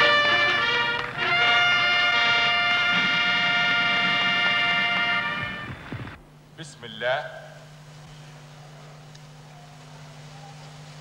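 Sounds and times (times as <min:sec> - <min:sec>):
trumpets holding long note: 0:00.0 - 0:06.1.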